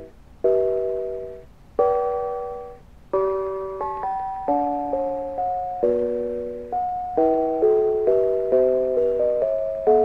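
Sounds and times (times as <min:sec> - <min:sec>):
bells chiming chords: 0:00.0 - 0:10.0.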